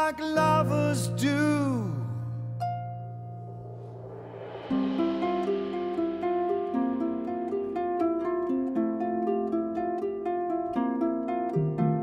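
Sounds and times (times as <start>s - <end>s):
harp plucked notes: 0.0s - 12.0s.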